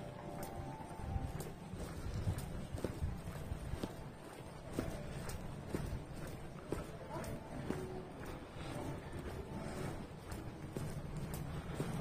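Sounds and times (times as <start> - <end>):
shoes clicking on hard floor: 0.0 - 12.0.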